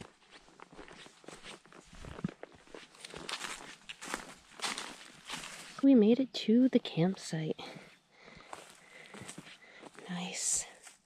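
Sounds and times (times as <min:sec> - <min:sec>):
footsteps on a trail: 0:00.0 - 0:05.9, 0:07.1 - 0:11.0.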